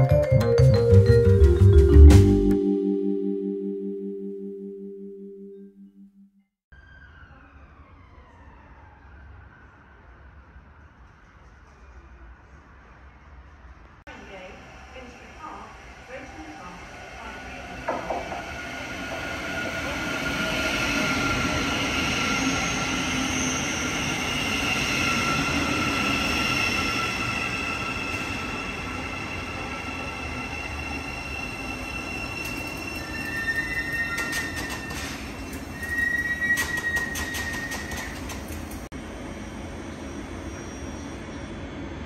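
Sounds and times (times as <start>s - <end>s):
train wheels rumbling: 11.1s - 39.8s
train whining tones: 14.1s - 42.0s
brake squeal: 19.6s - 38.9s, 39.9s - 41.8s.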